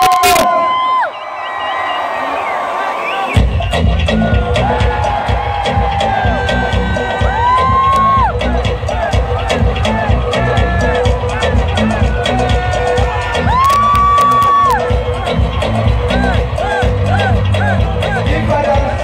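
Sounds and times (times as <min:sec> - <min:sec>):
crowd cheering: 0:00.0 - 0:19.0
loud concert music with bass beat: 0:00.0 - 0:19.0.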